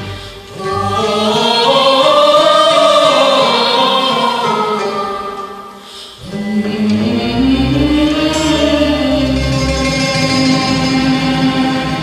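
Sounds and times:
lower voice singing: 0.5 - 12.0
man and woman singing folk song: 0.5 - 12.0.

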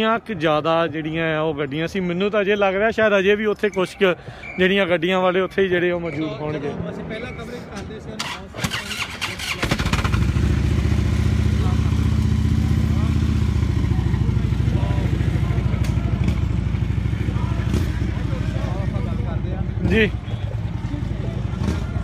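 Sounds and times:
motorcycle engine idling: 8.9 - 22.0.

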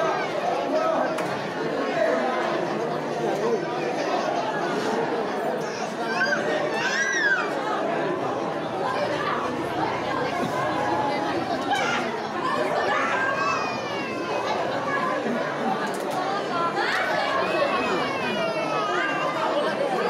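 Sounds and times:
crowd chatter: 0.0 - 20.0
children calling out: 5.4 - 20.0.

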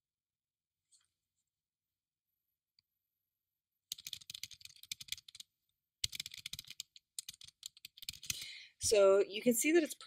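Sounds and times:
computer keyboard typing: 3.9 - 8.5.

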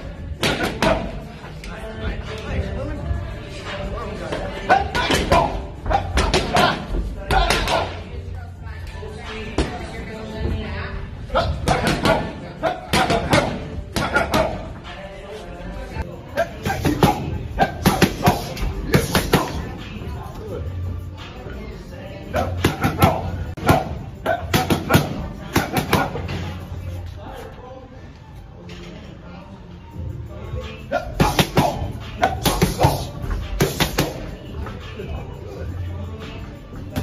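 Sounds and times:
background music: 0.0 - 37.0.

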